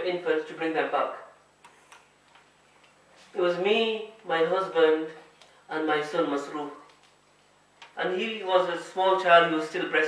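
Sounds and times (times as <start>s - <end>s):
man speaking: 0.0s - 1.4s, 3.3s - 6.9s, 8.0s - 10.0s.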